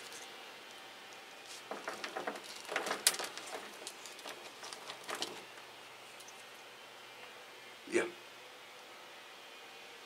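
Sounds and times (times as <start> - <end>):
bark chips clicking and rustling: 1.5 - 6.5.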